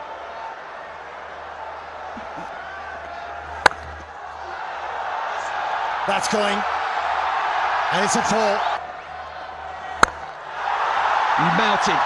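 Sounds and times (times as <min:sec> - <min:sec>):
low crowd hum: 0:00.0 - 0:12.0
cricket bat striking ball: 0:03.6 - 0:04.0, 0:10.0 - 0:10.3.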